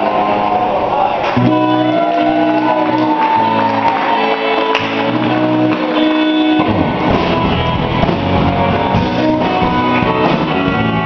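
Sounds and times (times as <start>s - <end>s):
rock band playing: 0.0s - 11.0s.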